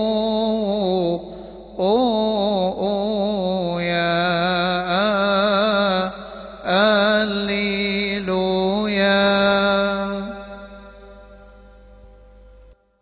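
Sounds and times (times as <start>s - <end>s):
man chanting a hymn: 0.0s - 11.8s.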